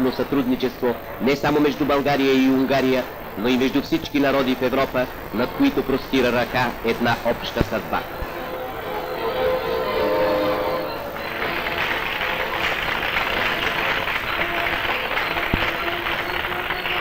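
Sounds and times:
audience applauding: 0.0s - 17.0s
music holding a steady chord: 0.0s - 17.0s.

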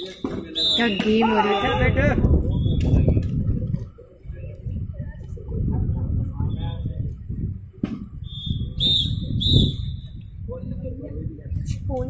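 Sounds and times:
whistle blowing high note: 0.5s - 1.8s, 8.2s - 10.2s.

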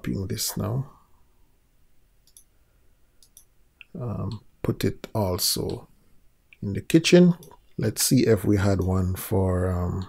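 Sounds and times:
faint computer mouse clicks: 2.2s - 2.5s, 3.2s - 4.4s.

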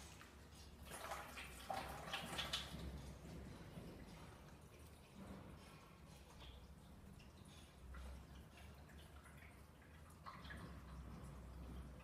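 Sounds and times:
water pouring into a funnel: 0.7s - 12.0s.

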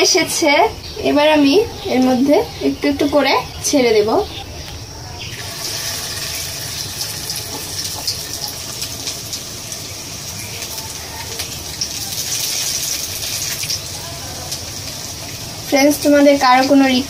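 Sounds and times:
batter frying in hot oil: 5.0s - 17.0s.

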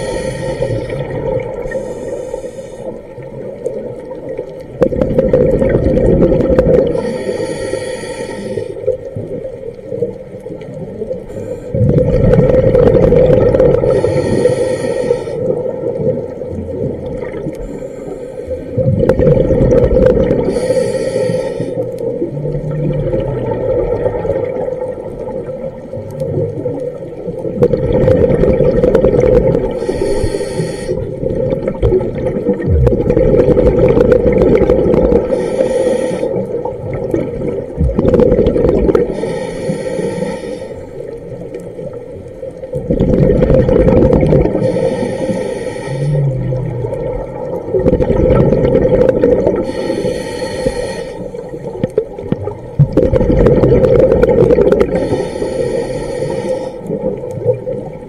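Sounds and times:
exhaled bubbles burbling: 0.0s - 1.9s, 3.1s - 7.1s, 8.9s - 14.4s, 15.4s - 17.7s, 18.7s - 20.7s, 22.0s - 30.1s, 31.0s - 35.6s, 36.3s - 39.2s, 41.1s - 45.1s, 45.9s - 49.9s, 51.4s - 55.3s, 56.8s - 58.0s
regulator inhale hiss: 0.0s - 3.2s, 6.8s - 9.0s, 11.3s - 11.8s, 13.8s - 15.6s, 17.5s - 18.8s, 20.4s - 22.2s, 29.6s - 31.3s, 35.1s - 36.6s, 39.0s - 41.4s, 44.5s - 46.7s, 49.5s - 51.9s, 54.7s - 57.1s.

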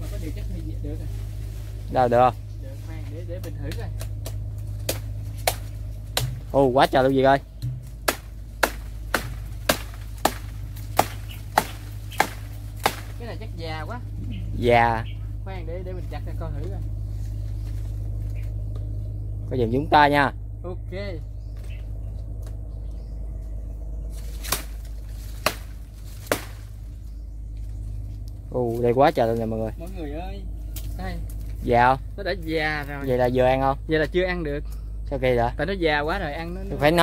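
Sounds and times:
steady low hum: 0.0s - 37.0s
machete chopping palm stalks: 3.4s - 13.4s, 24.1s - 26.9s.

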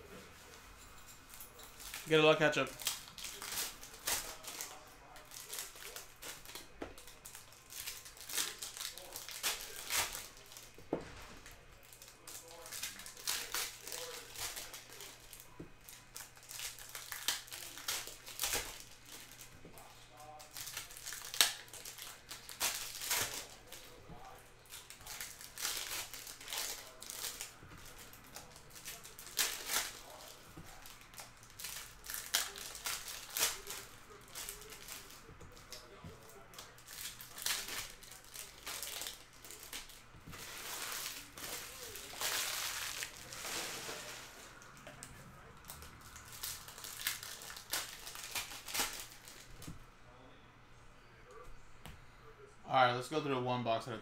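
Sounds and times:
foil wrappers crinkling and tearing: 1.3s - 49.8s.

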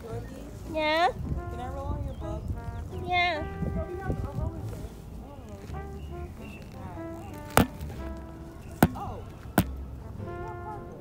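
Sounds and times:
soft background music: 0.0s - 11.0s
sharp knocks: 7.6s - 7.8s, 8.8s - 9.7s.

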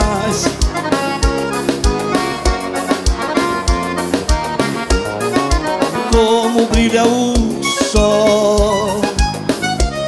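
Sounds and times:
accordion-led dance music: 0.0s - 10.0s
low drum beat: 0.0s - 10.0s.

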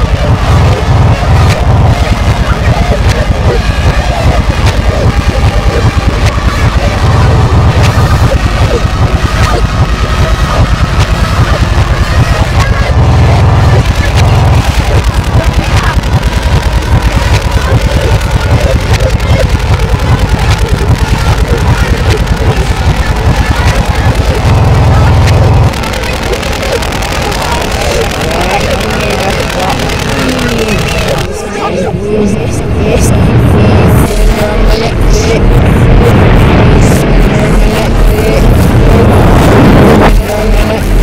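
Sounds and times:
heavy pulsing bass: 0.0s - 41.0s
reversed voice-like sounds: 0.0s - 41.0s.

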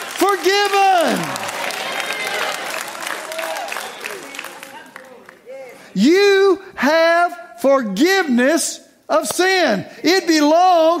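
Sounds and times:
crowd applauding: 0.0s - 6.0s.

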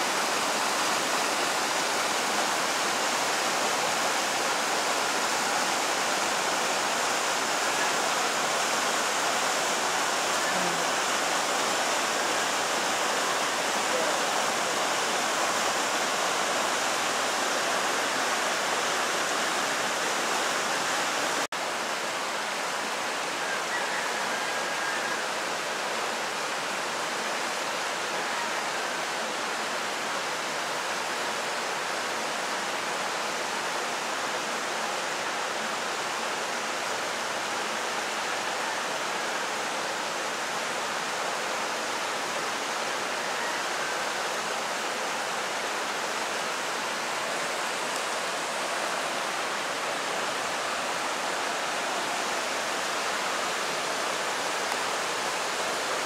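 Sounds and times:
river rushing over boulders: 0.0s - 56.0s.

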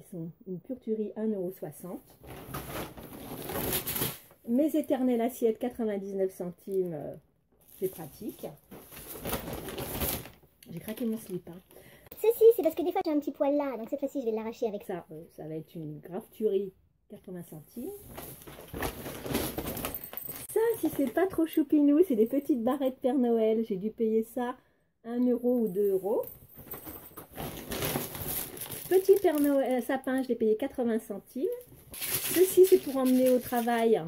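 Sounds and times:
plastic packaging crinkling: 2.2s - 4.4s, 7.7s - 11.6s, 18.0s - 21.2s, 26.6s - 29.8s, 31.4s - 34.0s.

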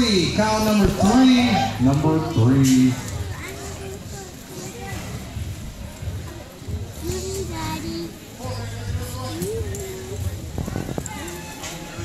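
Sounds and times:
low indoor arena din: 0.0s - 12.0s.

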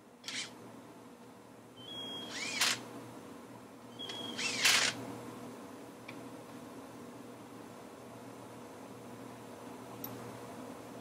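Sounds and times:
cordless drill whirring: 0.2s - 0.5s, 2.2s - 2.8s, 4.0s - 5.0s
small click: 10.0s - 10.2s.

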